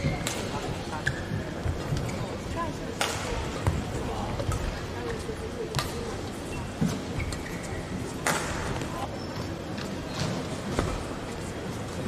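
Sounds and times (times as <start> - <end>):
murmur of voices: 0.0 - 12.0
racket striking shuttlecock: 3.0 - 3.4, 8.2 - 8.6
shoes squeaking on court: 6.4 - 8.0.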